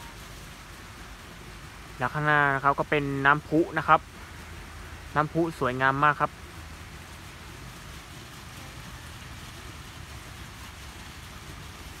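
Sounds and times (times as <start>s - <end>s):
fountain splashing into pond: 0.0s - 12.0s.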